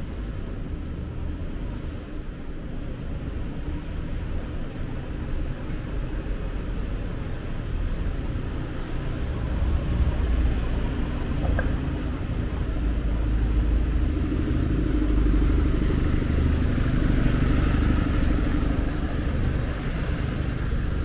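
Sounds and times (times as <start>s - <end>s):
vehicle engine rumbling: 0.0s - 21.0s.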